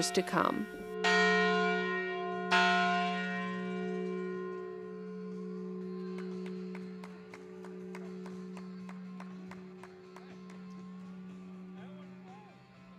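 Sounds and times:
bronze bell ringing: 0.0s - 8.6s.

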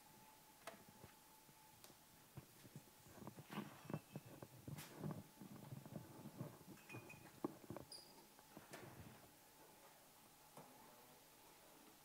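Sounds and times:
shuffles and rustles: 2.3s - 10.1s.

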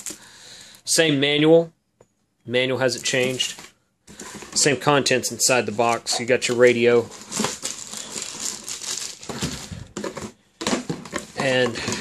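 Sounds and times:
plastic bag crinkling: 2.9s - 10.3s
cardboard rustling: 2.9s - 12.0s.

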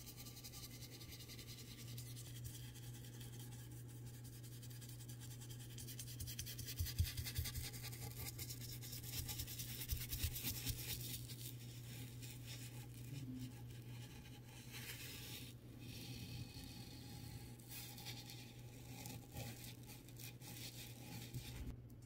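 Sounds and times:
paintbrush scrubbing on canvas: 0.0s - 21.7s.

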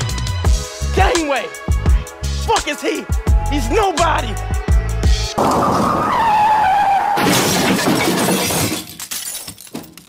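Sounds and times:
loud crash with falling tone: 5.4s - 8.4s.

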